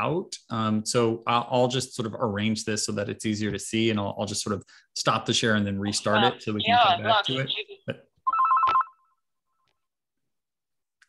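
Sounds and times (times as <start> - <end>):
electronic ring trilling: 8.3 - 9.2.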